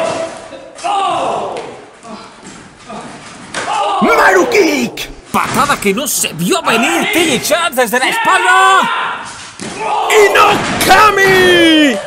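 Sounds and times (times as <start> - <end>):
man shouting: 3.7 - 9.1, 9.9 - 12.0.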